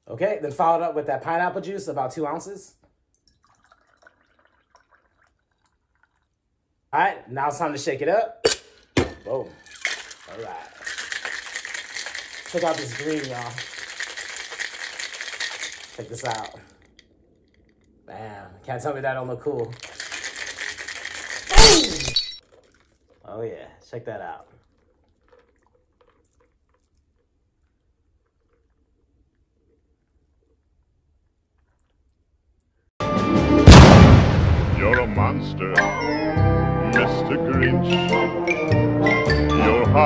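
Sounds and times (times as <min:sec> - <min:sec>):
juice pouring over ice: 0:03.2 - 0:06.5, 0:09.3 - 0:17.8, 0:19.6 - 0:32.2
glass shattering: 0:08.4 - 0:12.1, 0:21.1 - 0:22.4.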